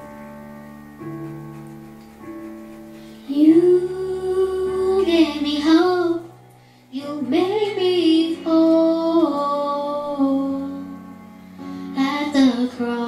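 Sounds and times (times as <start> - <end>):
instrumental accompaniment: 0.0 - 5.4
girl singing a slow song: 3.0 - 13.0.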